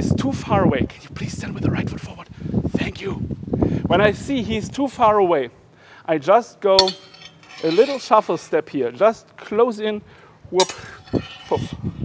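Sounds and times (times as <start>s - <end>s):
steel blades clinking and scraping: 6.8s - 8.4s, 10.6s - 12.0s.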